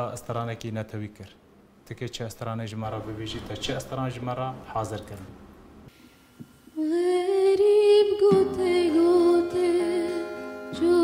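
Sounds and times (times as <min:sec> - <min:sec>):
woman singing long note: 0:06.8 - 0:11.0.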